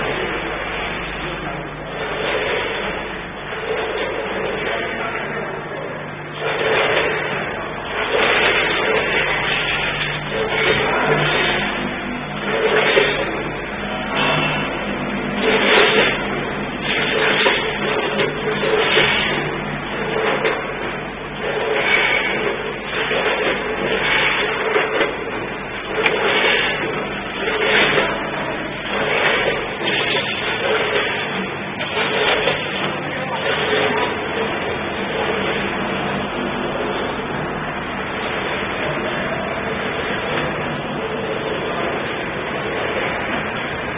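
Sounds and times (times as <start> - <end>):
packaging machine mechanical clatter: 0.0 - 43.9
steady low machine hum: 0.0 - 43.9.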